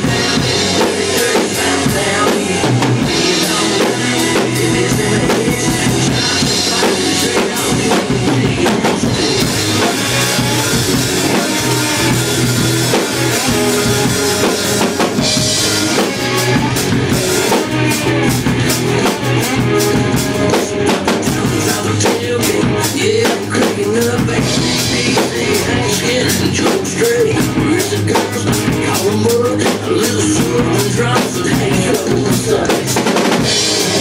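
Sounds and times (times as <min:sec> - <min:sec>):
drum kit beat: 0:00.0 - 0:34.0
loud country-rock recording: 0:00.0 - 0:34.0.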